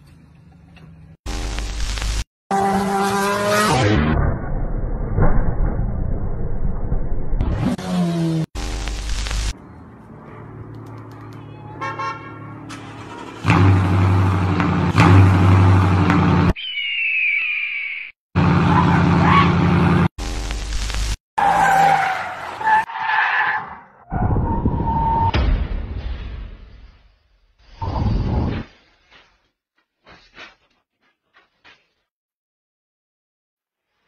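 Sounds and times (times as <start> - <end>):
tyres skidding: 9.8 - 16.5, 21.4 - 25.3
car horn: 11.2 - 13.9.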